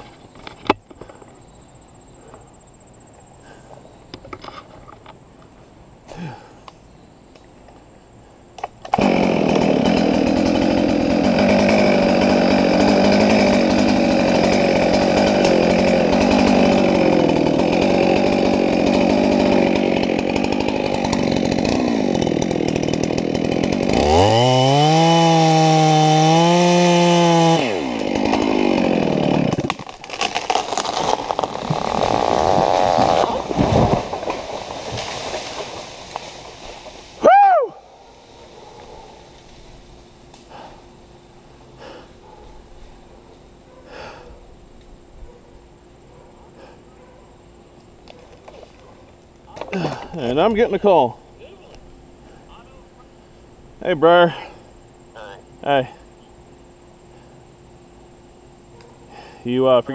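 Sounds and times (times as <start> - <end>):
tree cracking and crashing: 8.6 - 37.6
chainsaw cutting and revving: 8.9 - 37.2.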